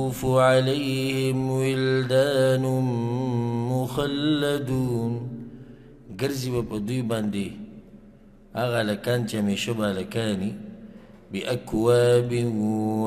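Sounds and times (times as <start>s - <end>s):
man chanting into a microphone: 0.0s - 7.7s, 8.5s - 13.0s.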